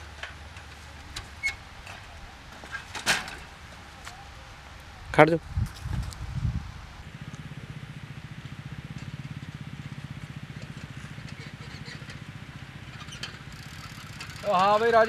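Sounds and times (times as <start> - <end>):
engine chugging at low speed: 7.0 - 15.0.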